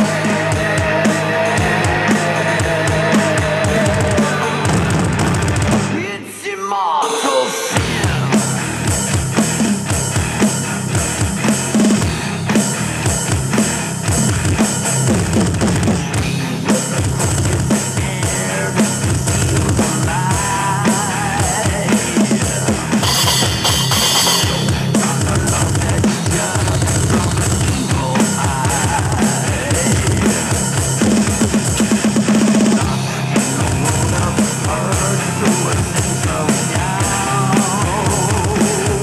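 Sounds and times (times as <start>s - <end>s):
drum kit playing: 0.0s - 6.0s, 7.1s - 39.0s
heavy metal song: 0.0s - 39.0s
wavering lead line: 23.0s - 25.2s.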